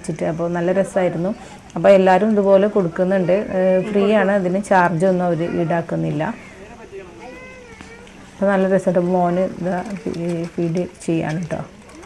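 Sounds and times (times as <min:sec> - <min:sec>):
woman speaking: 0:00.0 - 0:06.5, 0:08.4 - 0:11.8.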